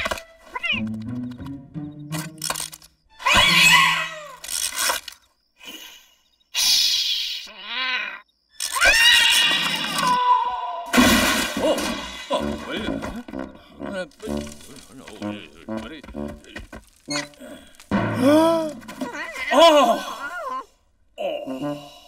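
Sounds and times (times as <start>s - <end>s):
choppy cartoon mumbling: 11.8s - 17.5s.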